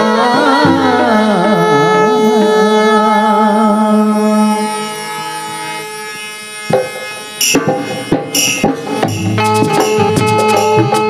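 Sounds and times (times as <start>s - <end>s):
drum stroke: 6.7s - 11.0s.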